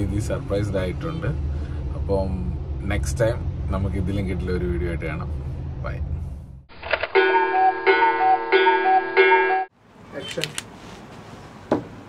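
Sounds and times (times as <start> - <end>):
melodic jingle: 7.2 - 9.7.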